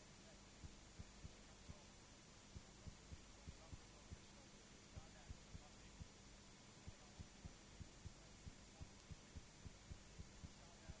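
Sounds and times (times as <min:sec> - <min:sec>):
faint low hum: 0:00.0 - 0:11.0
soft low thumps: 0:00.6 - 0:01.9, 0:02.5 - 0:04.4, 0:05.0 - 0:06.2, 0:06.8 - 0:11.0.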